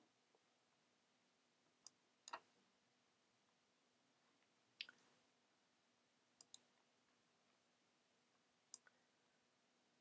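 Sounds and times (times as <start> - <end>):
computer mouse clicks: 1.8 - 2.5, 6.4 - 6.7.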